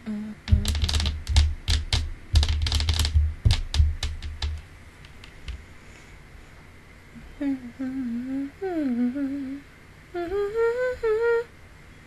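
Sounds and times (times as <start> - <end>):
sharp clicks with low thumps: 0.5 - 5.6.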